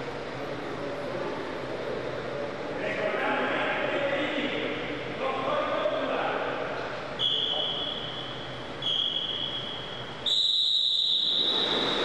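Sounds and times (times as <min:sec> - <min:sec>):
echoing pool hall background: 0:00.0 - 0:12.0.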